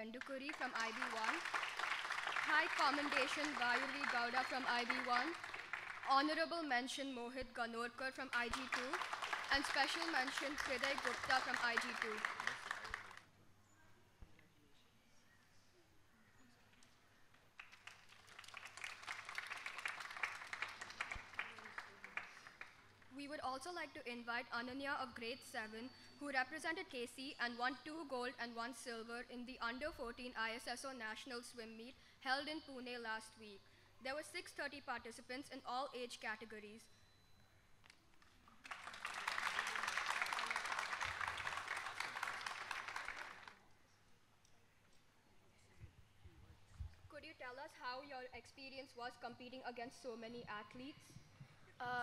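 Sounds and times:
audience applauding: 0:00.4 - 0:06.2, 0:08.3 - 0:13.2, 0:17.6 - 0:22.8, 0:38.6 - 0:43.6.

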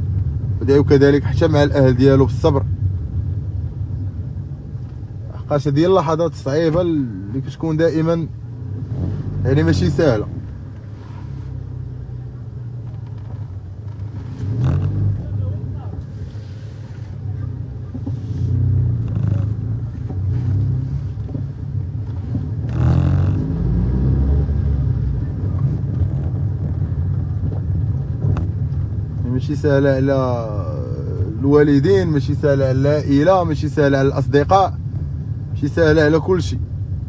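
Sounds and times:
car engine and tyre rumble: 0:00.0 - 0:37.0.

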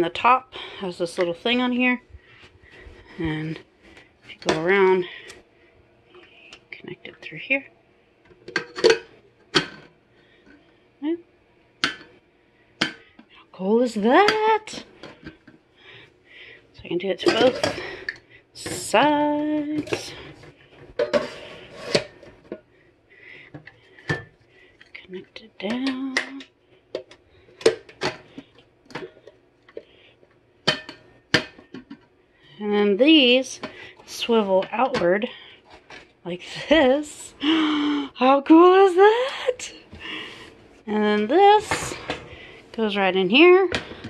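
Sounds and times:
slow cooker parts clicking and knocking: 0:08.2 - 0:10.6, 0:11.8 - 0:12.1, 0:23.4 - 0:32.2.

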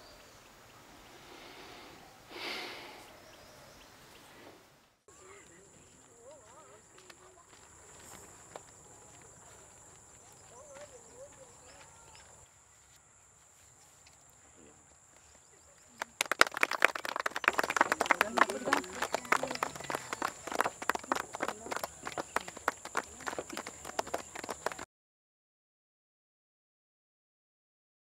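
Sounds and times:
faint voices: 0:05.1 - 0:12.4, 0:14.4 - 0:24.8
group clapping hands: 0:15.9 - 0:24.9.

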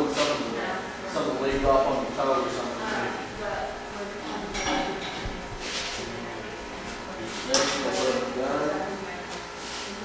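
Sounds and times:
quiet talk in large room: 0:00.0 - 0:10.0.

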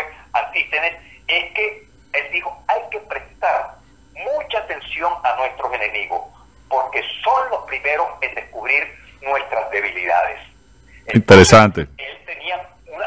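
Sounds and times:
voice over telephone line: 0:00.0 - 0:10.5, 0:11.1 - 0:13.0.

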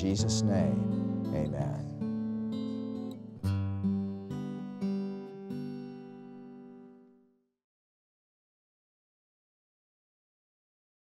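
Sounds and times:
acoustic guitar plucked: 0:00.0 - 0:07.3.

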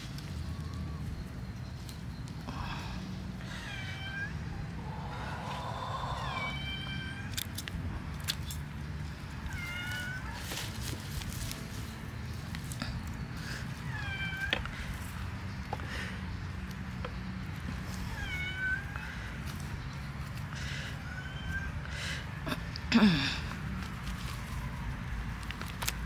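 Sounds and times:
cat meowing: 0:06.1 - 0:07.3, 0:18.1 - 0:19.1, 0:21.0 - 0:21.8.

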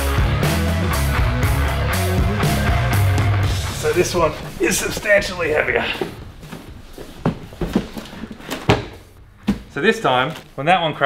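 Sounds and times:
cardboard box knocks and scuffs: 0:07.2 - 0:10.5.

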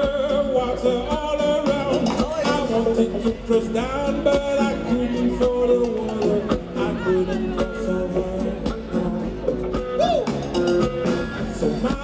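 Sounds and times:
drum kit and percussion groove: 0:00.0 - 0:12.0
electric bass: 0:00.0 - 0:12.0
person singing: 0:00.0 - 0:12.0.

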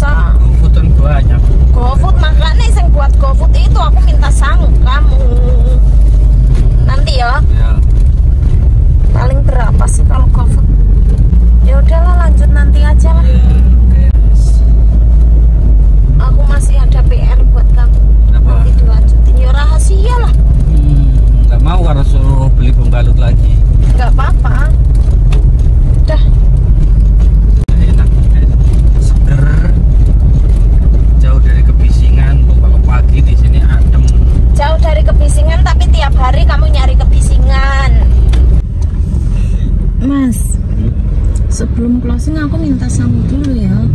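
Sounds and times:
people talking: 0:00.0 - 0:05.8, 0:06.8 - 0:07.8, 0:09.1 - 0:10.7, 0:11.6 - 0:14.7, 0:16.2 - 0:24.8, 0:26.1 - 0:26.4, 0:27.7 - 0:29.9, 0:31.2 - 0:38.1, 0:40.0 - 0:43.9
car engine and road noise: 0:00.0 - 0:43.9.

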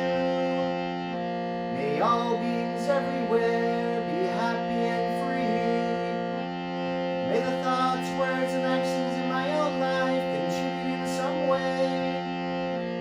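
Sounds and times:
harmonium sustained chords: 0:00.0 - 0:13.0.

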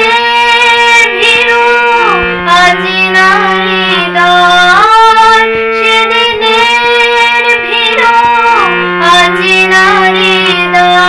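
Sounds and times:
girl singing: 0:00.0 - 0:11.0
sustained accompaniment note: 0:00.0 - 0:11.0.

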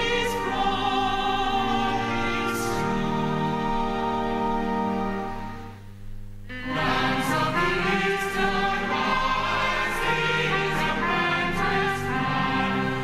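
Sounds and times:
church choir singing: 0:00.0 - 0:05.6, 0:06.5 - 0:13.0.

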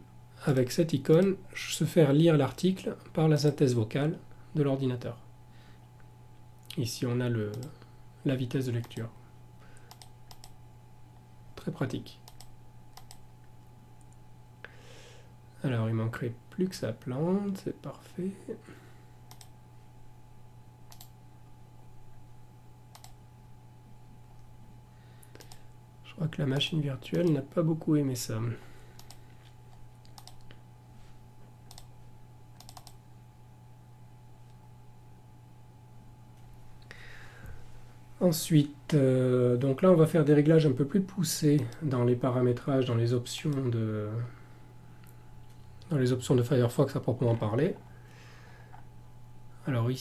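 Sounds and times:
low electrical hum: 0:00.0 - 0:50.0
computer clicks: 0:07.5 - 0:07.8, 0:09.8 - 0:10.6, 0:12.2 - 0:13.2, 0:19.3 - 0:19.6, 0:20.9 - 0:21.2, 0:22.9 - 0:23.2, 0:25.2 - 0:25.6, 0:29.0 - 0:30.6, 0:31.7 - 0:31.9, 0:32.6 - 0:33.0.

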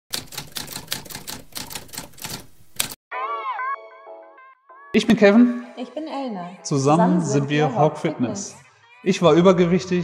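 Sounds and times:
rapid irregular clicking: 0:00.1 - 0:03.0.

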